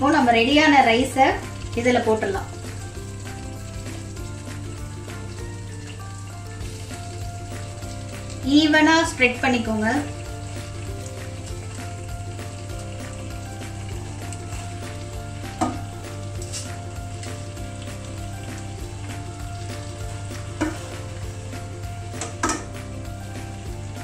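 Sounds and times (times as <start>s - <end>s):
gravy sizzling in a pan: 0.0s - 24.0s.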